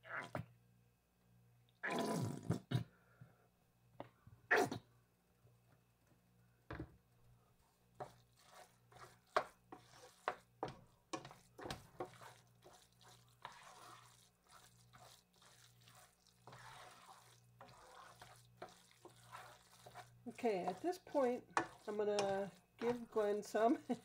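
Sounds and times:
wooden spoon scraping a pan: 8.0 - 24.0.

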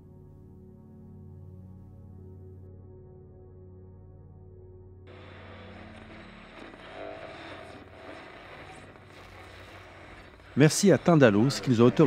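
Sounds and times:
low ambient drone: 0.0 - 12.0.

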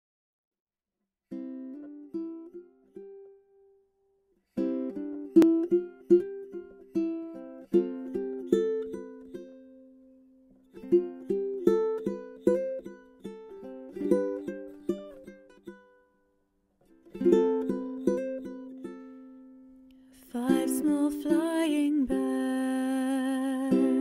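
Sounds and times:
plucked string instrument melody: 1.3 - 16.2, 16.8 - 24.0.

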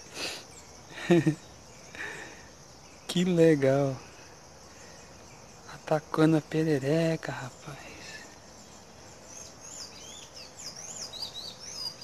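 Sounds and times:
man laughing: 0.9 - 2.2.

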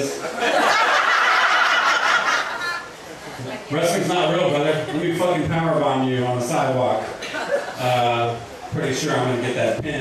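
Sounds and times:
small audience laughing: 0.1 - 3.5, 7.2 - 8.0.

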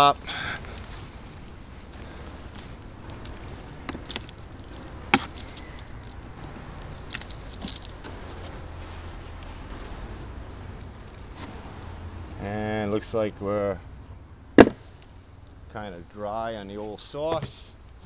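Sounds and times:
high insect chirring: 0.0 - 18.0
hive tool prying wooden cover: 3.2 - 8.5, 14.6 - 14.8.

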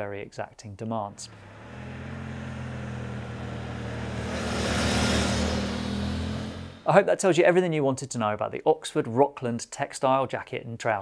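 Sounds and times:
motorcycle riding past: 1.2 - 6.9.

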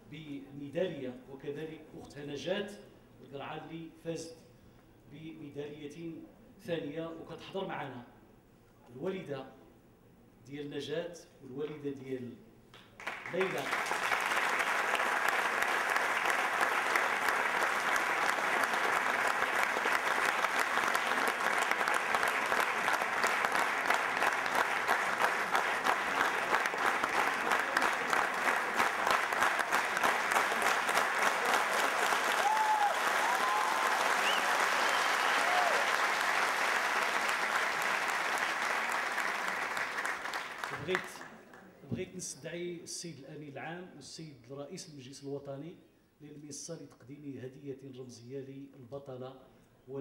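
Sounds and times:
audience applause: 13.0 - 41.3.

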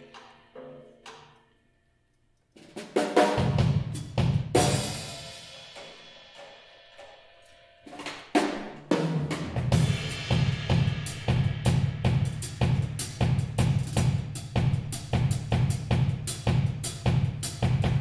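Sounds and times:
drum kit playing: 2.6 - 18.0
cymbal crash: 9.7 - 12.8.

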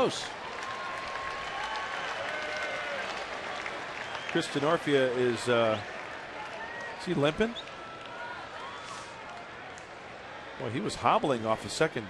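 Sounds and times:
crowd clapping: 0.0 - 9.9.

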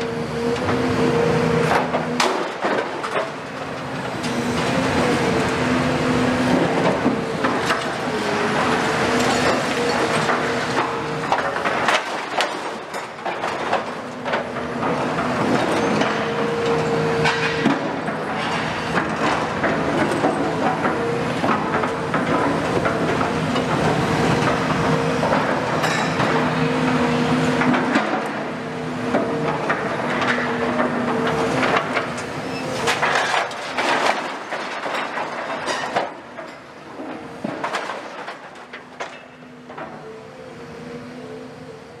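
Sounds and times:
excavator diesel engines running: 0.0 - 42.0.

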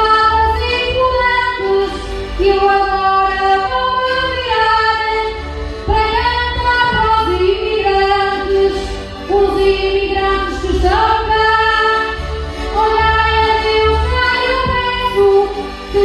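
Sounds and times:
instrumental backing with low bass: 0.0 - 16.0
woman singing through microphone: 0.0 - 16.0.

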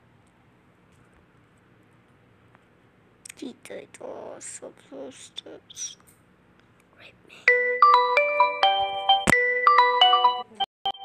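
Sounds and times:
phone ringtone bell-like notes: 7.5 - 11.0.

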